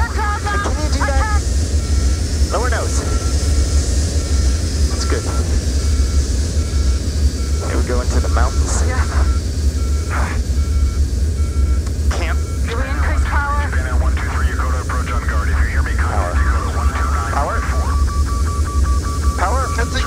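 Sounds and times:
indistinct voices: 0.0 - 1.6, 2.4 - 3.6, 4.3 - 5.8, 7.5 - 9.4, 11.9 - 18.3, 19.2 - 20.0
airliner cockpit rumble: 0.0 - 20.0
electronic warning tone beeping: 0.0 - 20.0.

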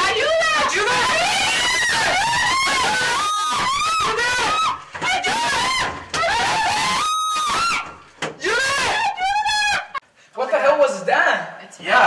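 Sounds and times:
high-pitched panicked screaming: 0.0 - 10.0.

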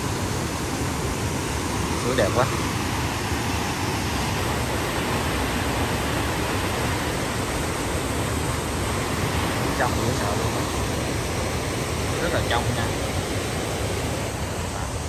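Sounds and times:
stream rushing over rocks: 0.0 - 15.0.

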